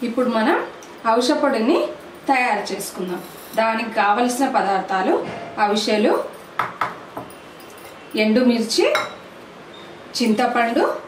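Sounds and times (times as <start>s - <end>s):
woman speaking: 0.0s - 6.4s, 10.2s - 11.0s.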